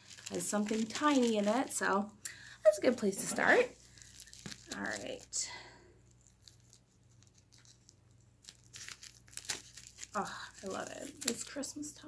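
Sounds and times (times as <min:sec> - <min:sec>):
plastic pouch crinkling and tearing: 0:00.0 - 0:01.9, 0:03.4 - 0:05.4, 0:06.1 - 0:11.9.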